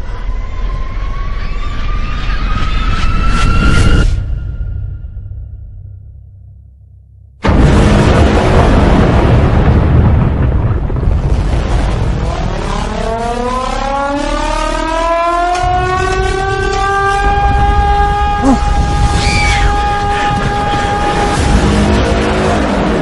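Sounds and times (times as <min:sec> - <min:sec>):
deep soundtrack rumble: 0:00.0 - 0:23.0
warning siren wailing: 0:12.6 - 0:22.3.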